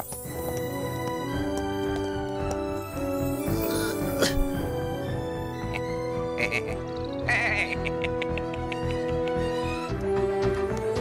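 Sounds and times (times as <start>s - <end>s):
background music with held notes: 0.0s - 11.0s
cartoon bird cackling: 5.6s - 9.0s.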